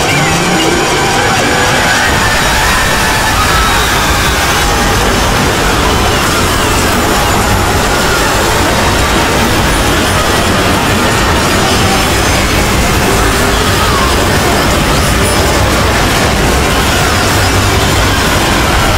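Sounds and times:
dense wash of cartoon soundtracks: 0:00.0 - 0:18.9.

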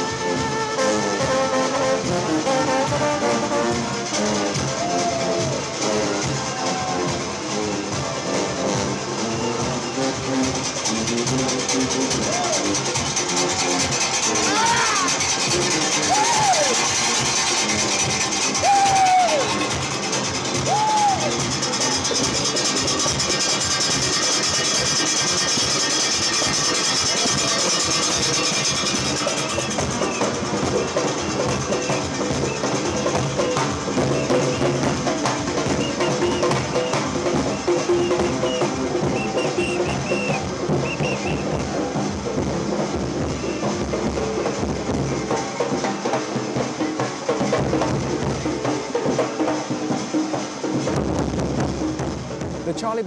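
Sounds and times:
brass horns holding notes: 0:00.0 - 0:04.8, 0:33.8 - 0:42.0
crowd voices: 0:00.0 - 0:53.0
quick percussion beat: 0:00.0 - 0:53.0
cowbells clanging: 0:09.4 - 0:41.6.

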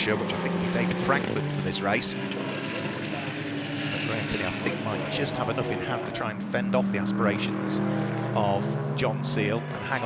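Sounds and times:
racing car engine at high revs: 0:00.0 - 0:10.0.

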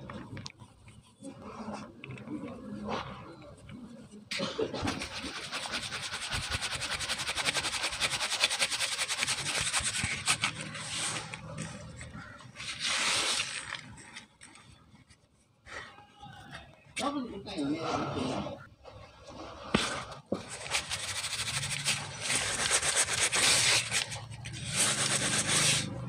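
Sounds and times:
scattered rubbing: 0:00.1 - 0:15.4, 0:18.3 - 0:26.0
powder scratching through sieve: 0:04.5 - 0:14.8, 0:19.4 - 0:26.0.

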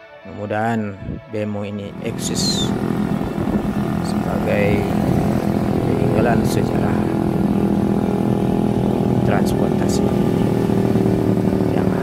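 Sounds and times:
motorcycle engine running: 0:01.9 - 0:12.0.

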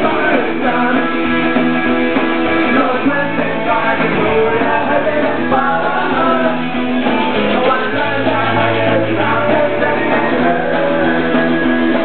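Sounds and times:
pop-punk band playing live: 0:00.0 - 0:12.0.

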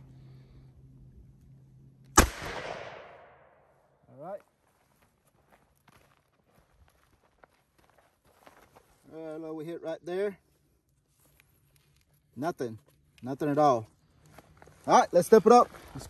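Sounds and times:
revolver gunshot: 0:02.2 - 0:03.6
faint footsteps: 0:04.4 - 0:09.2, 0:10.4 - 0:16.0.

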